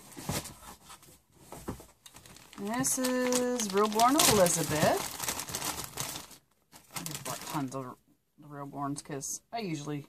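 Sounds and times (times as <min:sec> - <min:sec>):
plastic packaging crinkling: 0:02.0 - 0:07.8.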